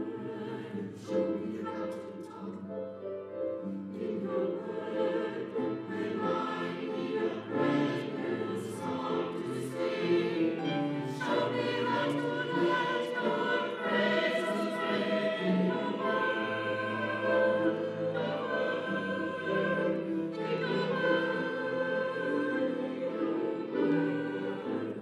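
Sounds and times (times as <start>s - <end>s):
choir singing: 0.0s - 25.0s.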